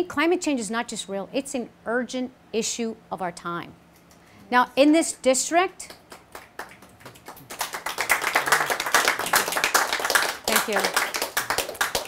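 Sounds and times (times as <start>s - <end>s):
people applauding: 5.8s - 12.0s.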